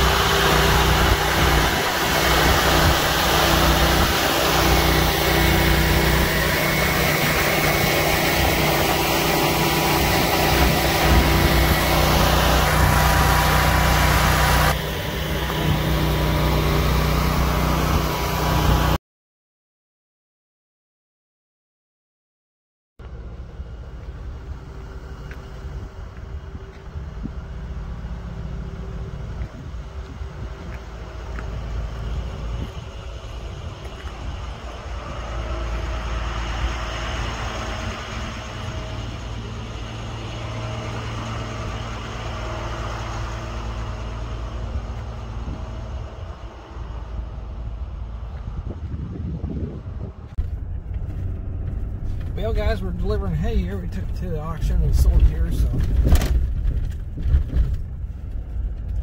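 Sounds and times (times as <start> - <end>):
truck engine rumbling: 0.0 - 19.0, 23.0 - 59.0.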